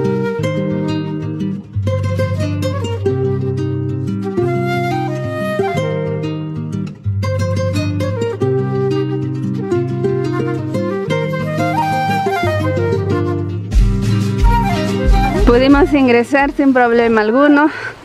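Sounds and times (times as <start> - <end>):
instrumental music with held notes: 0.0 - 16.8.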